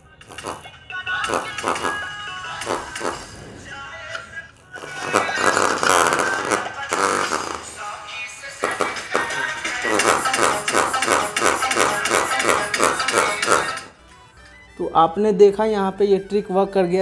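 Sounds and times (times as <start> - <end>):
song through small speaker: 0.0 - 17.0.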